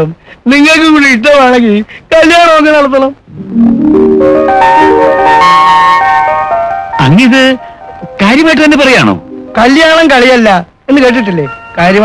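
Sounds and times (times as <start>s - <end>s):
rising notes into sustained chord: 3.3s - 7.0s, 9.1s - 9.8s
man speaking: 7.0s - 12.0s.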